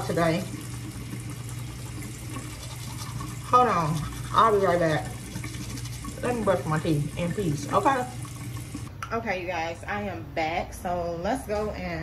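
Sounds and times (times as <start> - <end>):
teeth being brushed: 2.4 - 6.5.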